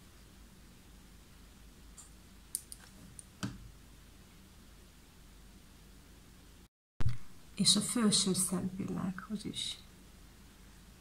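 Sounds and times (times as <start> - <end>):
light clicks of makeup items: 2.6 - 3.3.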